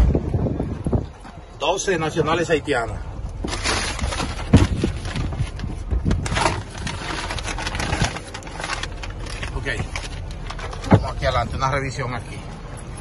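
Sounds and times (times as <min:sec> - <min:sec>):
low outdoor rumble: 0:00.0 - 0:13.0
knocks and rustling in car trunk: 0:03.4 - 0:07.0, 0:09.7 - 0:11.4.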